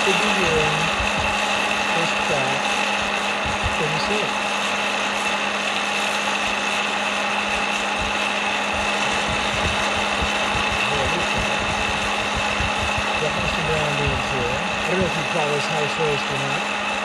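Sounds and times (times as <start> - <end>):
popcorn popper fan whine: 0.0 - 17.0.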